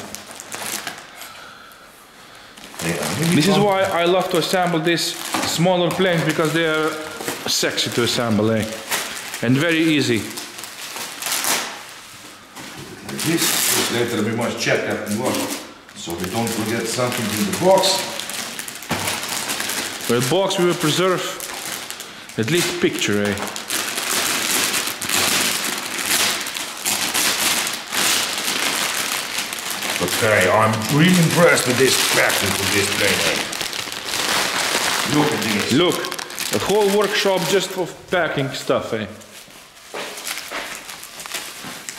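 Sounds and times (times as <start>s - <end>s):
plastic wrap rustling and crinkling: 0.0s - 41.9s.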